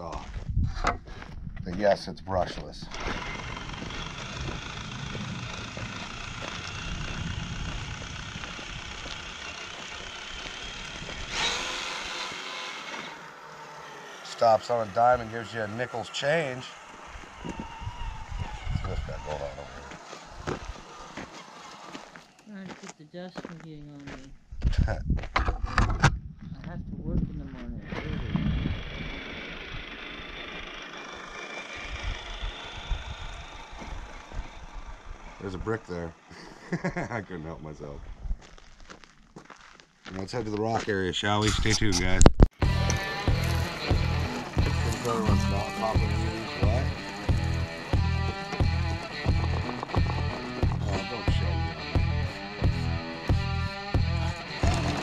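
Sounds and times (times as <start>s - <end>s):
tyres crunching on gravel: 0.0s - 24.3s, 30.4s - 41.3s, 42.6s - 55.0s
wind rumbling on microphone: 0.2s - 9.4s, 17.3s - 19.6s, 24.3s - 29.9s, 31.8s - 35.7s
electric motor whine: 2.4s - 22.7s, 27.5s - 38.3s, 42.6s - 55.0s
toy car scraping to a stop: 2.9s - 22.5s, 27.9s - 35.5s.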